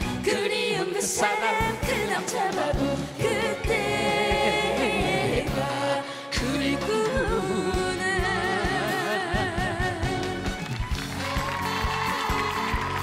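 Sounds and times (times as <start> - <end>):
woman and man singing a duet: 0.2 - 10.4
backing band with drum beat: 6.4 - 13.0.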